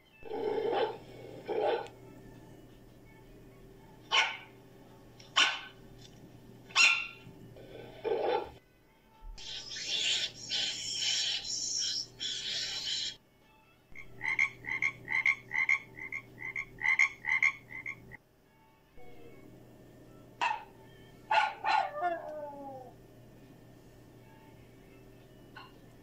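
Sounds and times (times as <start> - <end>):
sharp falling calls: 9.4 - 13.2
frog croaking: 14.0 - 18.2.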